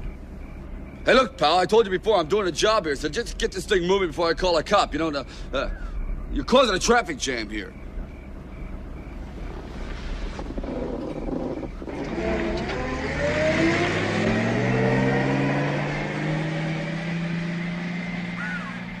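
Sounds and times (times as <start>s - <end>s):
car engine revving and pulling away: 8.1s - 19.0s.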